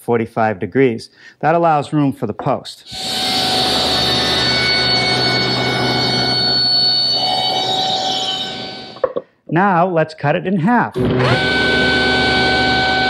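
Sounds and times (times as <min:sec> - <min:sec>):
saw blade whine: 0:02.9 - 0:09.0, 0:11.0 - 0:13.0
table saw cutting wood: 0:02.9 - 0:09.1, 0:11.0 - 0:13.0.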